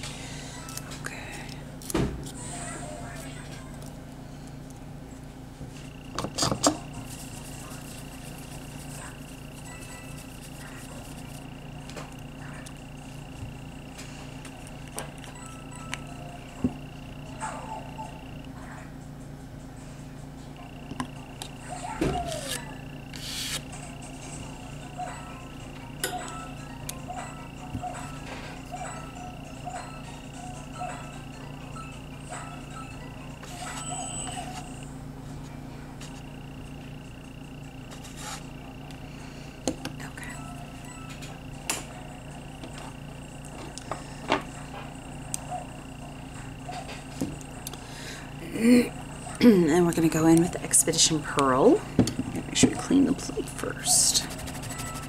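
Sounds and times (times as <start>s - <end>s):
electrical hum: 0.0s - 55.0s.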